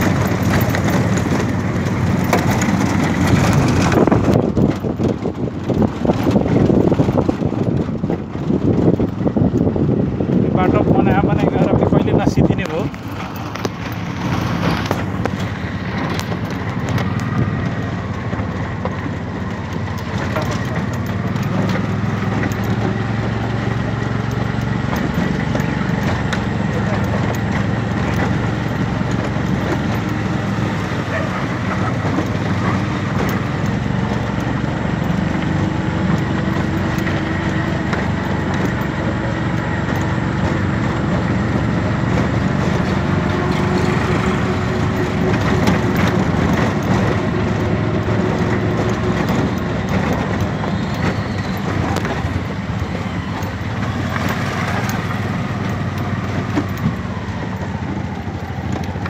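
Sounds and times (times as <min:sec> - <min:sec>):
auto-rickshaw motor droning: 0:00.0 - 0:59.0
road noise: 0:00.0 - 0:59.0.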